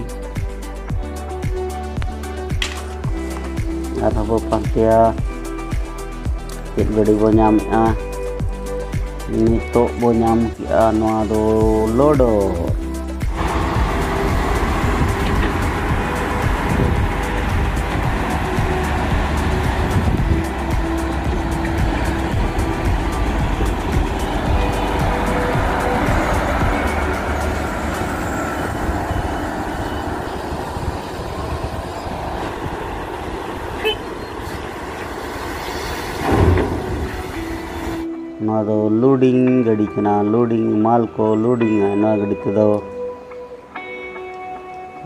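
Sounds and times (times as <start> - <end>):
wheel loader diesel engine: 9.2 - 38.2.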